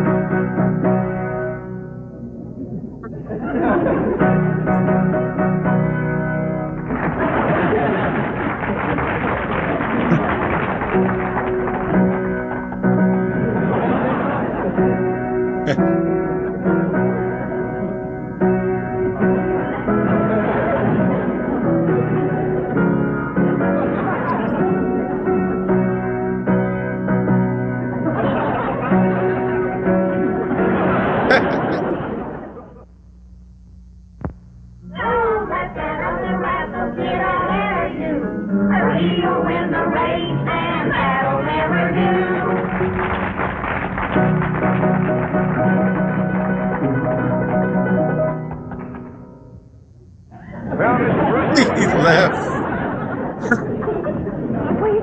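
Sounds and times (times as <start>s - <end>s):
low steady hum: 0.0s - 8.8s, 10.1s - 43.1s, 44.1s - 55.0s
piano playing lively tune: 0.0s - 31.8s, 41.6s - 49.5s.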